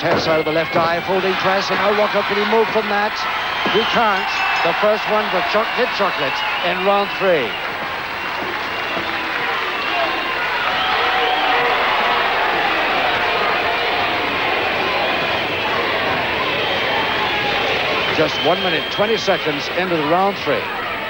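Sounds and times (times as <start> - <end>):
crowd cheering and applauding: 0.0 - 21.0.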